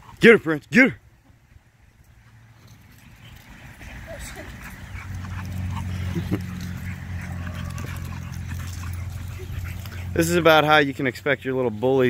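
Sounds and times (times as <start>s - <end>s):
dogs yipping and whining: 2.9s - 10.2s.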